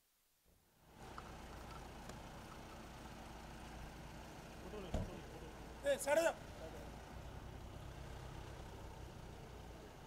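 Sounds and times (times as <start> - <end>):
car engine rumble: 0.8 - 10.0
car door slamming: 4.8 - 5.2.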